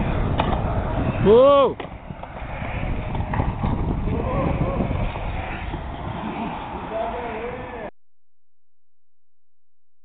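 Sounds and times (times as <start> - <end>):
skateboard wheels rolling on concrete: 0.0 - 7.9.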